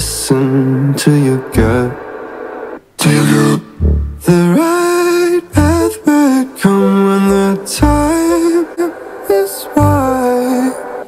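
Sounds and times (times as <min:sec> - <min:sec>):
pop song over bluetooth speaker: 0:00.0 - 0:02.0, 0:03.0 - 0:11.0.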